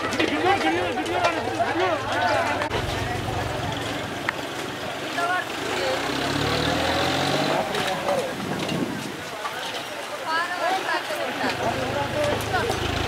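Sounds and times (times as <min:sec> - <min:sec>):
people's voices: 0:00.0 - 0:13.0
vehicle engine running: 0:02.4 - 0:08.3, 0:11.6 - 0:13.0.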